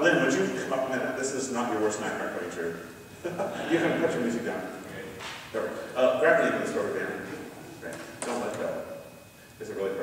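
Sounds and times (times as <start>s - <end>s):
indistinct speech in a hall: 0.0s - 10.0s.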